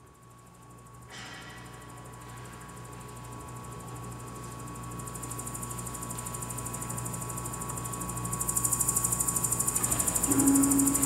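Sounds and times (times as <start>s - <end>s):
steady electric hum: 0.0s - 11.0s
held tones: 10.3s - 11.0s
low steady tone: 10.3s - 11.0s.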